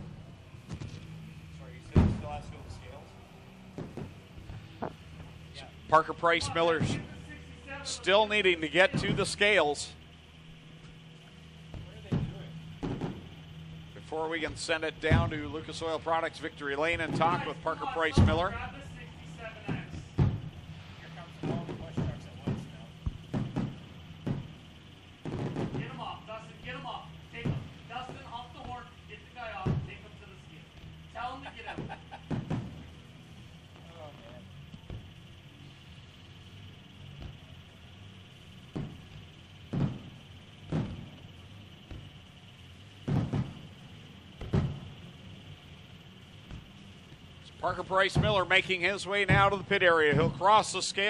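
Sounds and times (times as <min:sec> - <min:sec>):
firework shells booming: 0:00.0 - 0:50.8.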